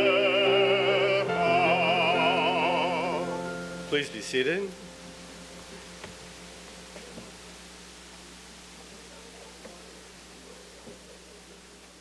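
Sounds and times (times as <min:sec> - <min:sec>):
steady hiss and low hum: 0:00.0 - 0:12.0.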